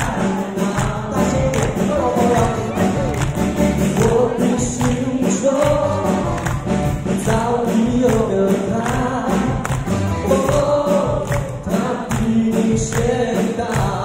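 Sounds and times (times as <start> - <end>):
man singing into a microphone: 0.0 - 3.2, 3.8 - 14.0
live rock band playing: 0.0 - 13.7.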